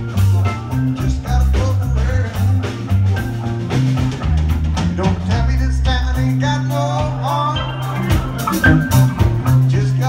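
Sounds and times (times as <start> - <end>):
drum kit: 0.0 - 10.0
electric bass notes: 0.0 - 10.0
electric guitar: 0.0 - 10.0.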